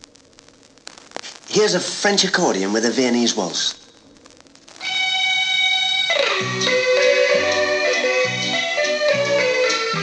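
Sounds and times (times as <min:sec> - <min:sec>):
accordion playing a waltz: 0:06.2 - 0:10.0.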